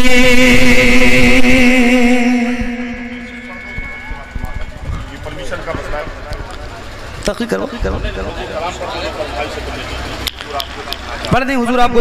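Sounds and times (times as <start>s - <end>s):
man singing over pa: 0.0s - 4.0s.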